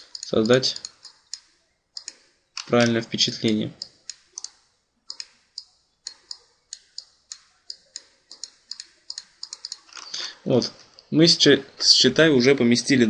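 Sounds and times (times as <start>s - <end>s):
computer mouse clicking: 0.0s - 10.2s.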